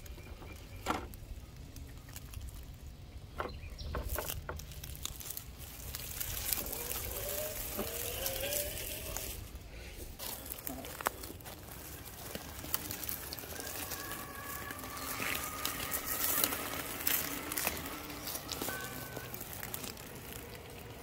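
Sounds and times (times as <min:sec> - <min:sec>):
tyres scraping on stone and leaves: 0:00.0 - 0:21.0
electric motor whine: 0:12.0 - 0:21.0.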